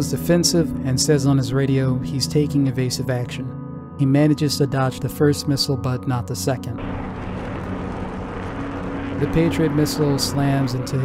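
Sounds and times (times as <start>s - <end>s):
rocket motor roaring: 6.8s - 11.0s.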